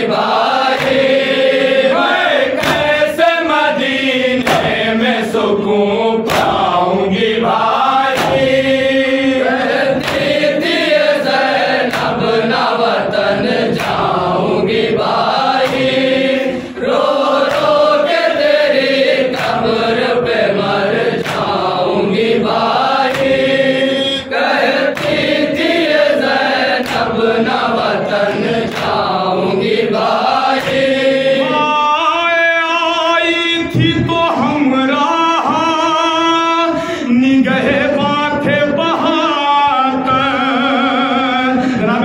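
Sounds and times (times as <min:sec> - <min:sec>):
men chanting a lament in unison: 0:00.0 - 0:42.0
chest-beating slaps: 0:00.2 - 0:01.4, 0:02.1 - 0:03.2, 0:03.9 - 0:05.0, 0:06.2 - 0:06.8, 0:07.9 - 0:09.0, 0:09.6 - 0:12.4, 0:13.6 - 0:16.6, 0:17.3 - 0:21.9, 0:22.5 - 0:27.6, 0:28.2 - 0:29.2, 0:30.4 - 0:31.1
man singing a high line: 0:23.4 - 0:24.6, 0:31.4 - 0:42.0.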